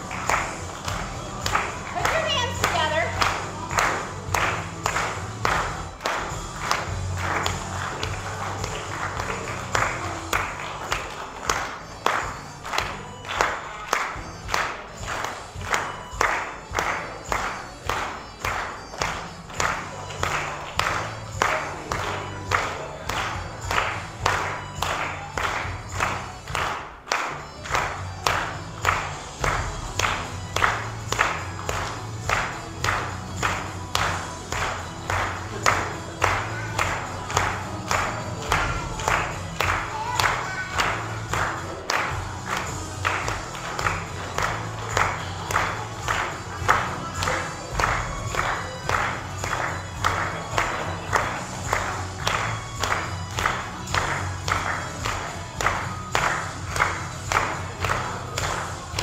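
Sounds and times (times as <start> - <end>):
upbeat music: 0.0 - 59.0.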